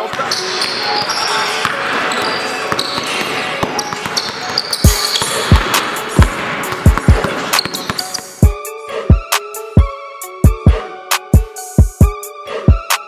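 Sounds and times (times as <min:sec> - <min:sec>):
sneaker squeaks: 0:00.0 - 0:08.5
basketball dribbled on hardwood: 0:02.7 - 0:08.2
hip-hop beat with deep bass: 0:04.8 - 0:13.0.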